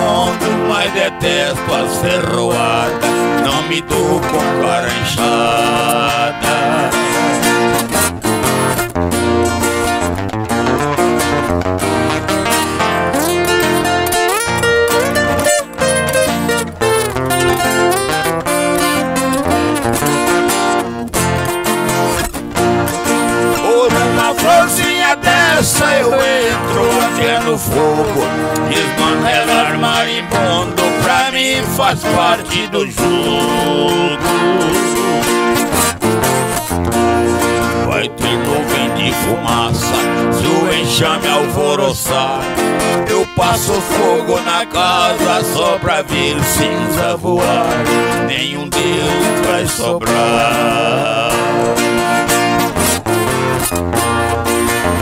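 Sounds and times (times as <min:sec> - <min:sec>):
person singing: 0:00.0 - 0:07.8, 0:23.4 - 0:35.7, 0:37.4 - 0:52.6
acoustic guitar: 0:00.0 - 0:55.0
viola caipira plucking: 0:00.0 - 0:55.0.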